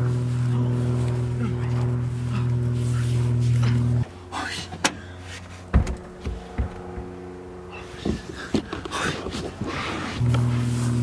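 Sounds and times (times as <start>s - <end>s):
car engine hum: 0.0s - 11.0s
knocks and thumps: 5.7s - 7.1s.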